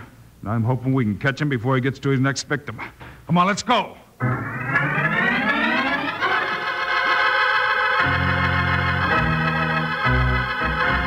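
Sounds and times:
organ chord climbing: 4.2 - 11.0.

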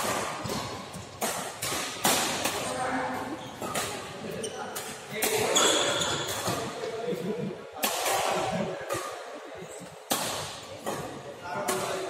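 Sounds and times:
racket striking shuttlecock: 0.0 - 4.0, 10.1 - 12.0
reverberant badminton hall noise: 0.0 - 12.0.

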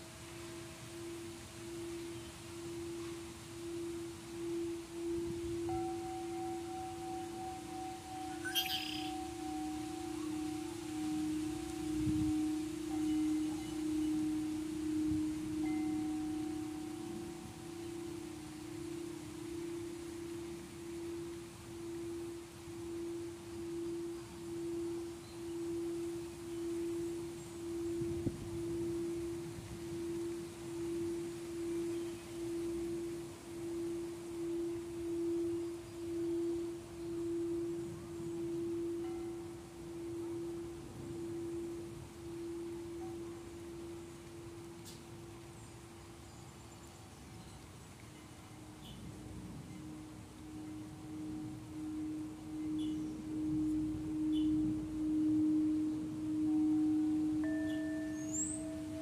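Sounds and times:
higher singing bowl tone: 0.0 - 59.0
singing bowl pulsing tone: 0.0 - 59.0.

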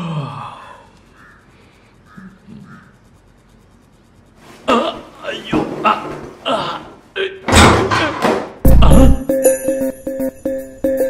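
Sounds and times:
faint bird calls: 0.6 - 3.2.

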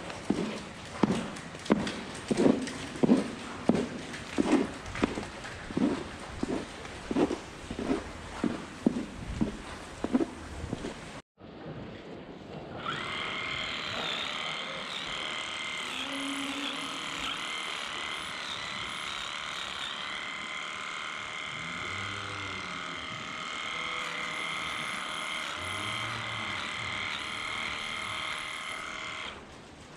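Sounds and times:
electric tool motor whine: 12.8 - 29.4.

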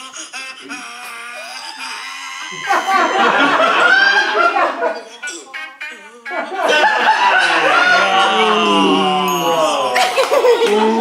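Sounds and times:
loud laughter: 0.3 - 11.0
man making vocal noises: 8.3 - 10.2.

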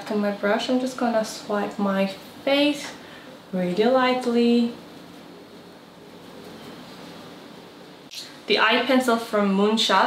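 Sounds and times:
faint room tone hiss: 0.0 - 10.0.

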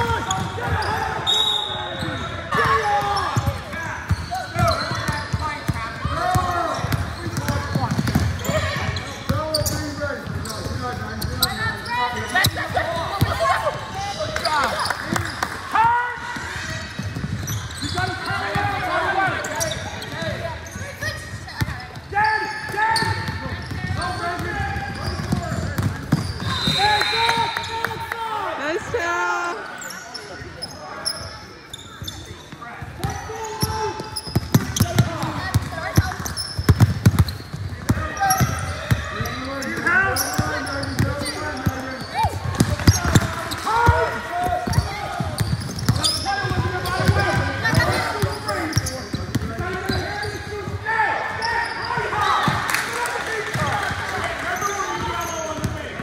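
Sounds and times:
voices of players and spectators: 0.0 - 56.0.

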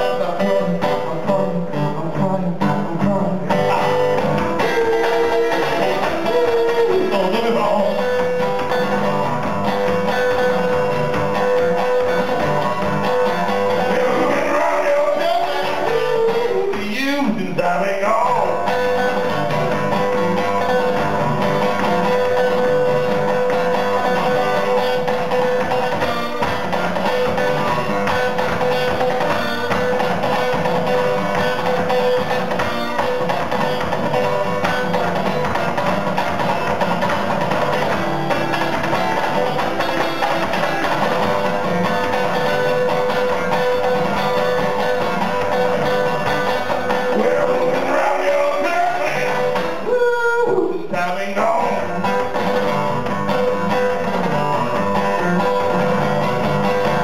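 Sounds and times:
acoustic guitar blues playing: 0.0 - 57.0.

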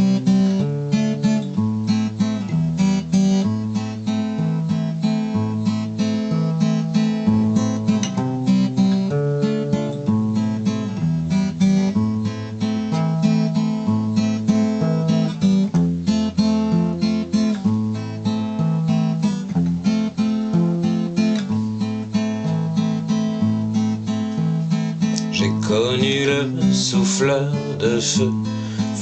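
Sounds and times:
acoustic guitar strumming: 0.0 - 29.0.

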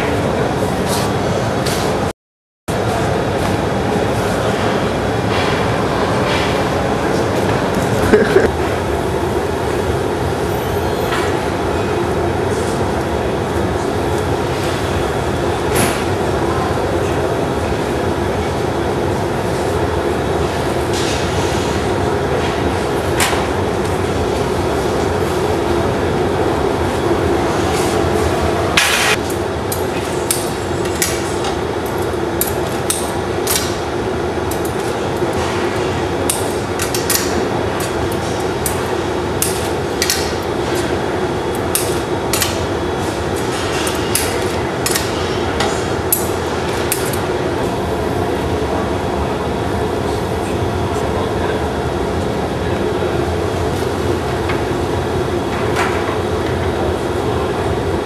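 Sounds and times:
furnace and burners roaring: 0.0 - 2.1, 2.7 - 58.0.

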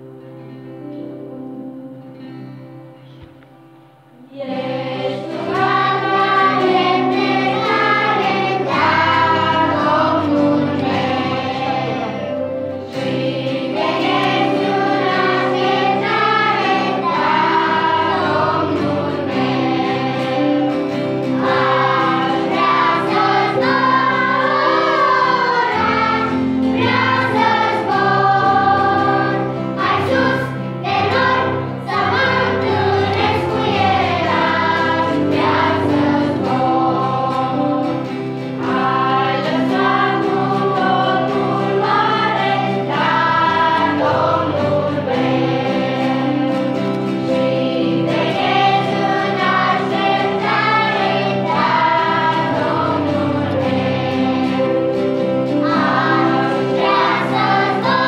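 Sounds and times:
guitar: 0.0 - 58.0
piano: 0.0 - 58.0
children's choir singing a hymn: 4.2 - 58.0.

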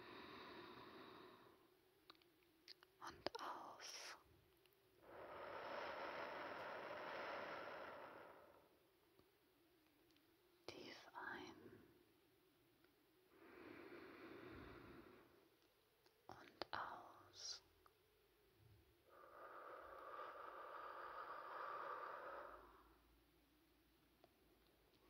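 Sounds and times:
woman breathing slowly: 0.0 - 1.7, 5.0 - 8.9, 13.3 - 15.6, 18.9 - 23.3.

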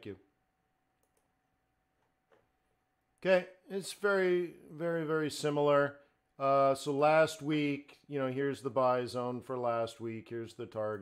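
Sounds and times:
faint steady hum: 0.0 - 11.0
computer mouse clicks: 1.0 - 1.3.

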